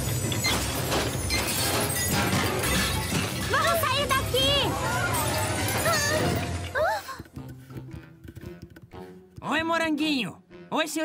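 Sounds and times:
appliance rattling and clattering: 0.0 - 6.4
music: 0.0 - 11.0.

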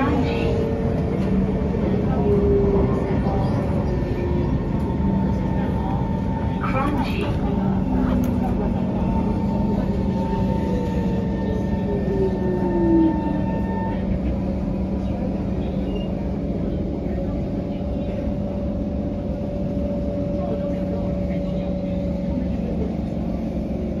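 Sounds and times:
wheels rumbling on rail: 0.0 - 24.0.

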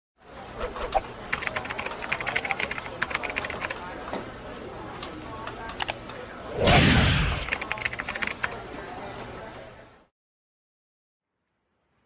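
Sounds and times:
keyboard typing: 1.3 - 3.9, 5.7 - 6.0, 7.4 - 8.6.

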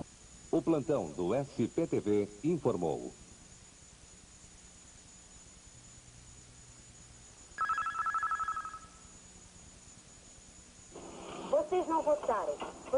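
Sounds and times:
faint tape hiss: 0.0 - 12.9.

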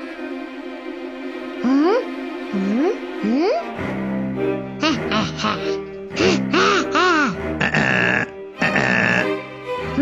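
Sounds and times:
children's background music: 0.0 - 10.0.

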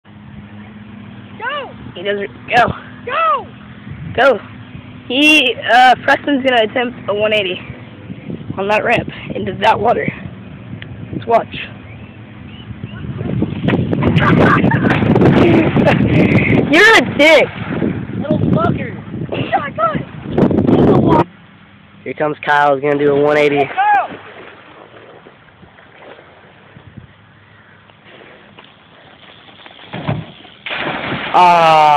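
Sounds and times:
bicycle approaching: 0.0 - 19.5, 23.6 - 31.6
faint outdoor background noise: 0.0 - 31.9
steady low hum: 0.0 - 31.9
person shouting: 23.6 - 24.2, 31.4 - 31.9.

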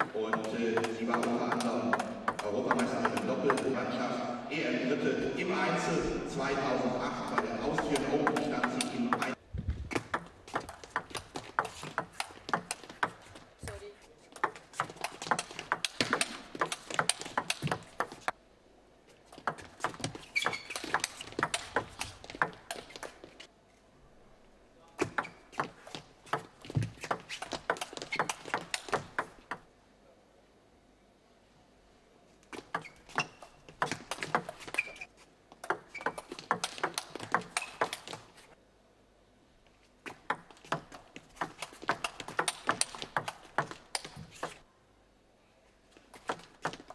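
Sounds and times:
table tennis ball clicking: 0.0 - 3.7, 10.0 - 13.2, 14.4 - 18.3, 19.4 - 23.2, 26.3 - 29.6, 35.6 - 38.2, 40.2 - 44.6.

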